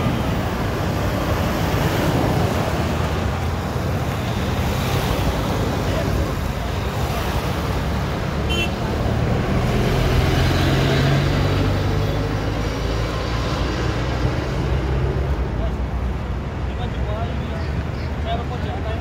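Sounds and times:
large vehicle engine hum: 0:00.0 - 0:19.0
vehicles driving past: 0:00.0 - 0:19.0.

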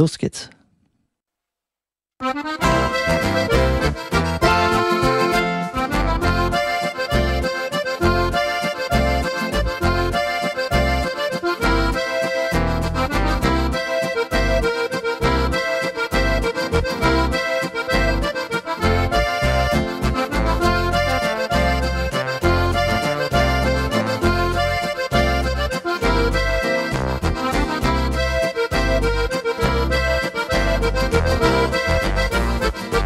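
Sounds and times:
accordion melody: 0:02.2 - 0:33.0
waltz accompaniment with bass: 0:02.2 - 0:33.0.

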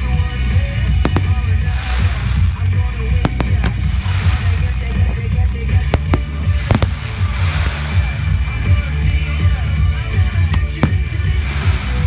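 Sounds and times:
fireworks bangs: 0:00.0 - 0:09.7, 0:10.5 - 0:12.0
music with heavy bass beat: 0:00.0 - 0:12.0.

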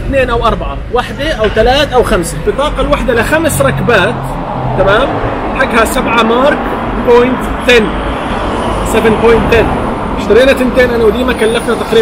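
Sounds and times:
man talking: 0:00.0 - 0:08.0, 0:08.8 - 0:12.0
cars going by: 0:00.0 - 0:12.0.

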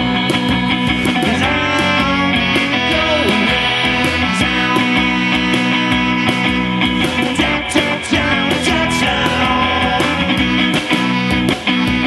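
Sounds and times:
gliding guitar lead line: 0:00.0 - 0:12.0
live rock band playing: 0:00.0 - 0:12.0.

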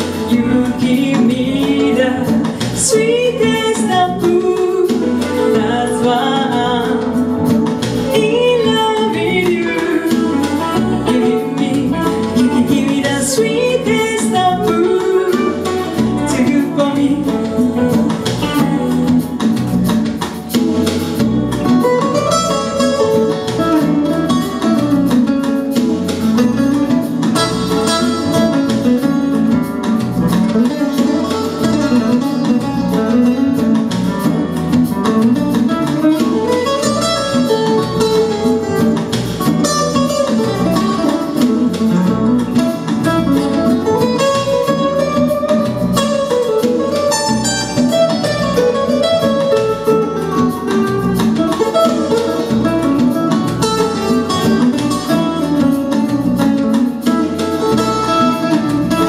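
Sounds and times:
electric guitar solo: 0:00.0 - 0:59.0.

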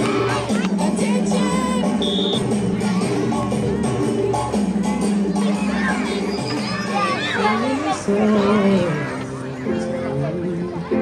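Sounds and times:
children shouting and cheering: 0:00.0 - 0:11.0
music with held bass: 0:00.0 - 0:11.0.

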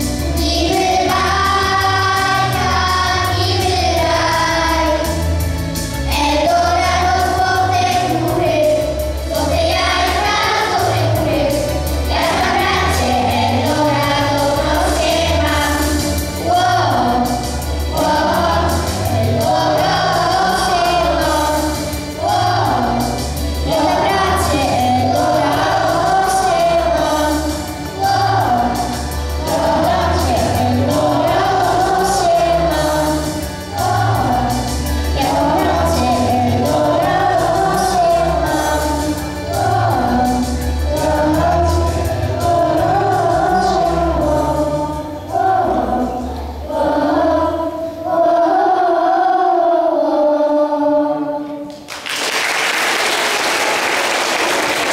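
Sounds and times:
children singing: 0:00.0 - 0:05.4, 0:06.1 - 0:51.8
backing track with bass: 0:00.0 - 0:48.5.

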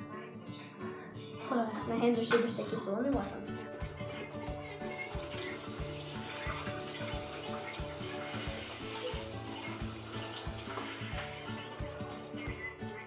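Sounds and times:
background music with beat: 0:03.2 - 0:13.0
hands being washed: 0:03.8 - 0:11.2
water running from a tap: 0:03.8 - 0:11.2.

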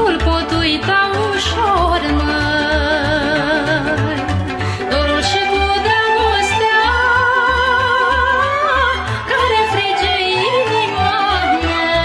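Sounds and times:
folk orchestra with bass beat: 0:00.0 - 0:12.0
woman singing with vibrato: 0:00.0 - 0:12.0.

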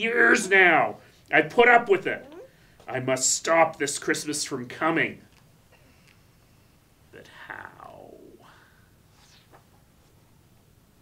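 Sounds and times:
man speaking: 0:00.0 - 0:05.3.

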